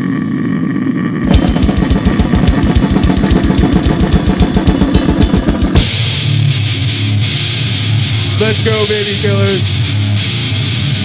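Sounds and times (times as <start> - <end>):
low droning sound: 0.0 - 11.0
guitar: 1.1 - 11.0
fast metal drumming: 1.3 - 7.1
crashing cymbals: 1.3 - 7.6.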